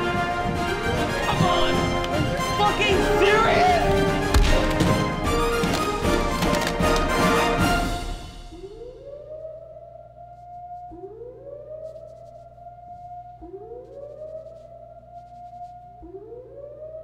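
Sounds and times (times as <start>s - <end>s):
alarm siren wailing: 0.0s - 4.3s, 7.3s - 17.0s.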